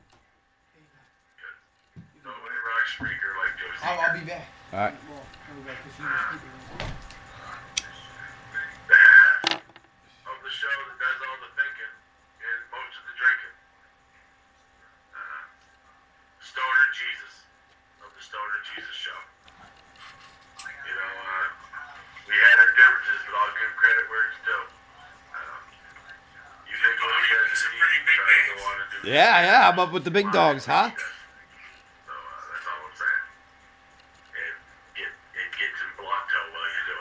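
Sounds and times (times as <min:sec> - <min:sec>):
indistinct voices: 0:26.7 - 0:31.2
man talking: 0:28.5 - 0:31.1.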